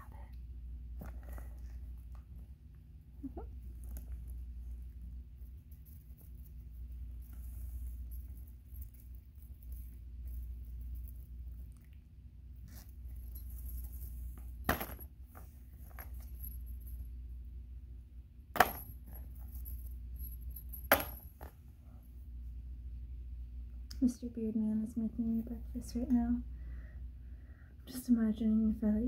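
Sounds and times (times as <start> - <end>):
steady low hum: 0.0 - 29.0
metal chain links clinking: 12.8 - 15.1, 18.6 - 21.5.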